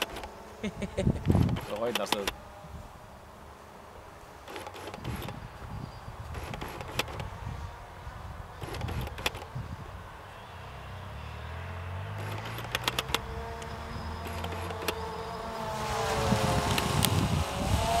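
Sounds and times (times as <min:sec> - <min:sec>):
wind rumbling on microphone: 0:00.0 - 0:03.2, 0:04.0 - 0:10.3, 0:12.1 - 0:18.0
drone propellers humming: 0:00.0 - 0:10.2, 0:11.0 - 0:18.0
handling clicks: 0:12.2 - 0:13.7.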